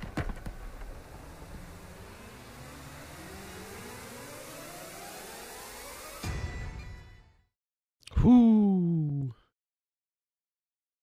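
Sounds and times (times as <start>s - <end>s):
whine rising in pitch: 0.6s - 6.2s.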